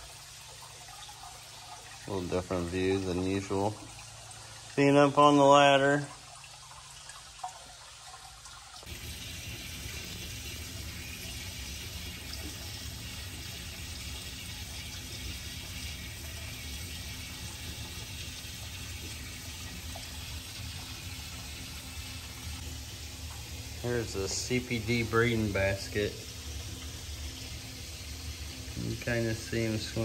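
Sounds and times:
water running from hoses: 0:00.0 - 0:30.0.

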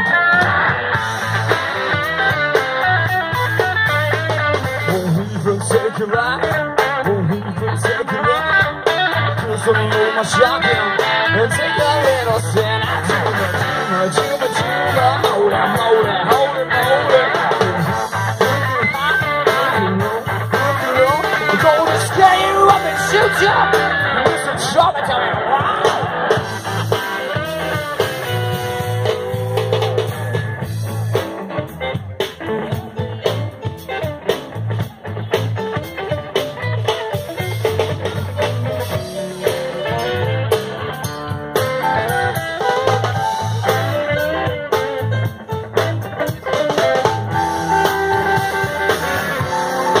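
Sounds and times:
drum kit: 0:00.0 - 0:50.0
electric guitar lines: 0:00.0 - 0:50.0
pulsing bass: 0:00.0 - 0:50.0.

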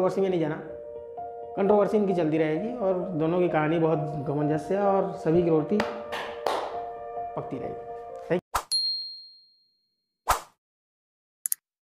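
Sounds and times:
sharp click: 0:11.4 - 0:11.6.

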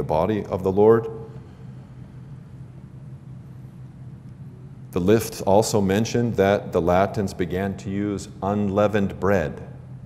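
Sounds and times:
man speaking: 0:00.0 - 0:01.3, 0:05.0 - 0:09.8
low hum with faint hiss: 0:00.0 - 0:10.0.

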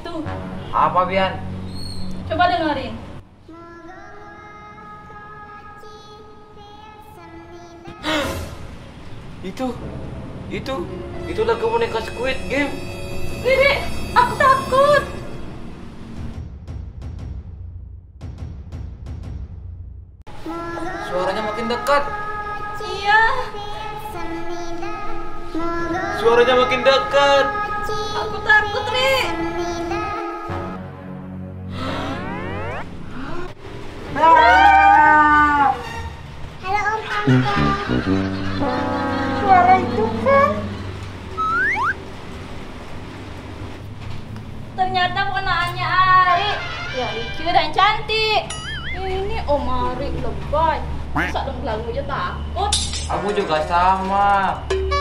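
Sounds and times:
short rising whistle: 0:41.3 - 0:42.0.

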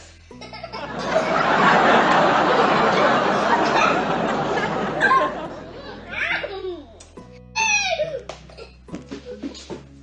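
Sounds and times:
young children laughing and chattering: 0:00.4 - 0:08.6.

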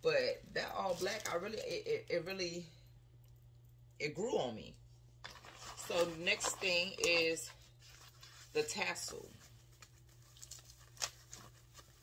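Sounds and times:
bubble wrap rustling and crinkling: 0:05.3 - 0:12.0.

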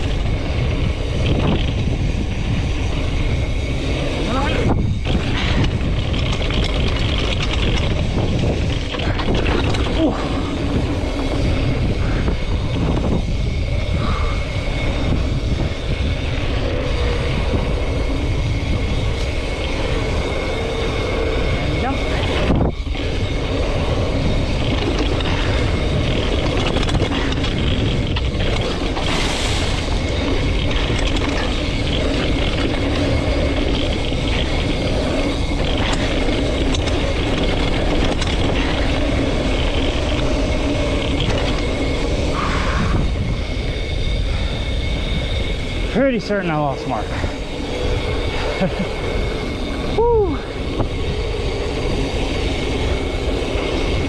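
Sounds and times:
bike tyres rolling on sand: 0:00.0 - 0:54.0
wind rush on microphone: 0:00.0 - 0:54.0.

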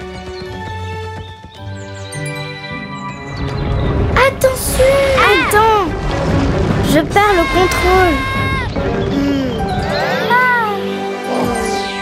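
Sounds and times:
background music: 0:00.0 - 0:12.0
baby crying: 0:07.3 - 0:08.7.

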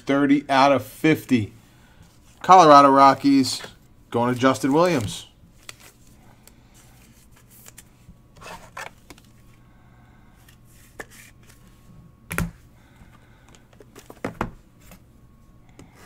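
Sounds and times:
low steady hum: 0:00.0 - 0:16.0
cards rustling and sliding: 0:04.2 - 0:09.6, 0:10.4 - 0:11.8.

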